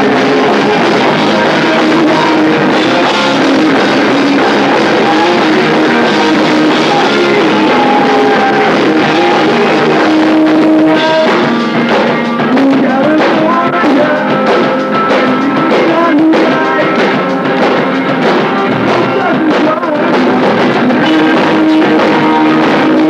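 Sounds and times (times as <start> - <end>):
rock band playing live: 0.0 - 23.0.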